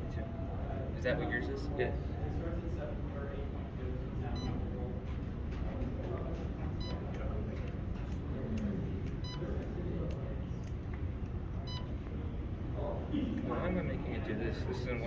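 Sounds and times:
background chatter: 0:00.0 - 0:15.0
short electronic beeps: 0:06.8 - 0:07.0, 0:09.2 - 0:09.4, 0:11.6 - 0:12.0.

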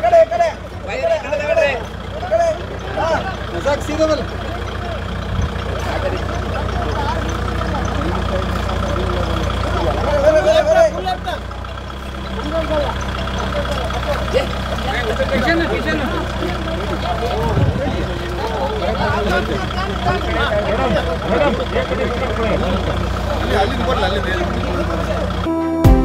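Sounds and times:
people shouting: 0:00.0 - 0:25.4
crowd talking: 0:00.0 - 0:26.0
tractor engine running: 0:00.0 - 0:26.0.

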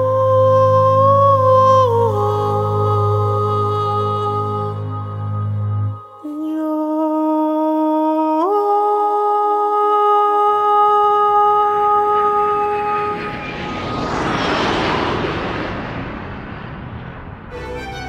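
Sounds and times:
whoosh of noise: 0:11.9 - 0:18.0
sustained musical note: 0:17.5 - 0:18.0.

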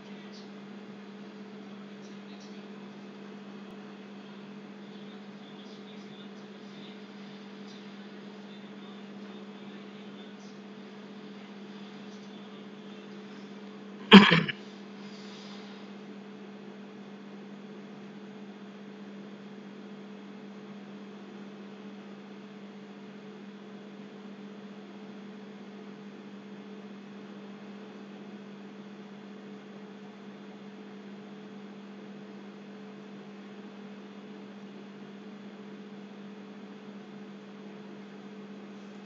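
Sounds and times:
electrical hum: 0:06.2 - 0:15.8.

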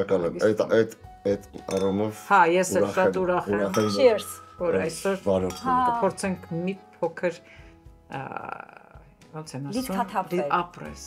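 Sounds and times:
background music: 0:00.0 - 0:11.0
glasses clinking: 0:01.6 - 0:02.2, 0:02.8 - 0:06.3, 0:09.8 - 0:10.4.

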